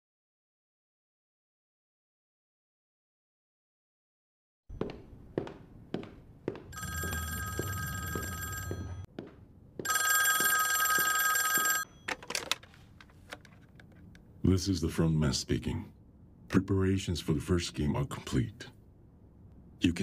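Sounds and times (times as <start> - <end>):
desk telephone ringing: 6.7 - 9.1, 9.8 - 12.6.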